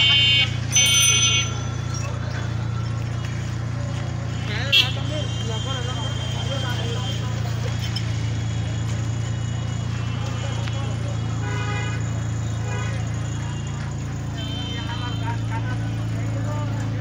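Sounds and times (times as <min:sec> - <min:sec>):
low engine hum: 0:00.0 - 0:17.0
people talking: 0:00.0 - 0:17.0.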